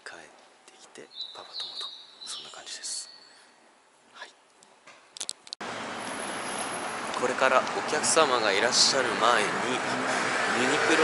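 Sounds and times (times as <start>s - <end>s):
city street traffic noise: 5.2s - 11.0s.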